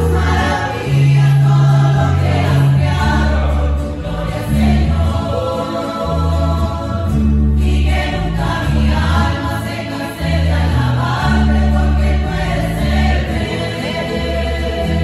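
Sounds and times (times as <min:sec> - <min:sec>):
deep bass line: 0:00.0 - 0:15.0
mandolins and guitars: 0:00.0 - 0:15.0
women's choir singing a hymn: 0:00.0 - 0:15.0.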